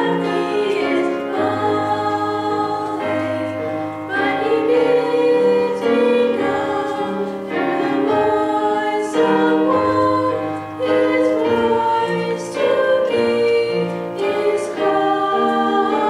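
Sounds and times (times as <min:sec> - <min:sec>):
women singing in harmony: 0:00.0 - 0:16.0.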